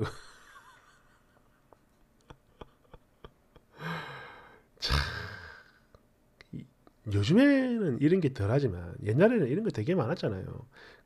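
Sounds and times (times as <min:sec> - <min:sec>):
man's breathy exhale: 0:03.8 - 0:05.8.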